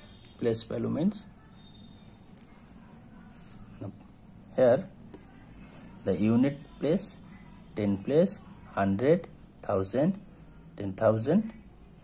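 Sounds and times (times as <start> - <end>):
high-pitched insect trilling: 0.0 - 12.0.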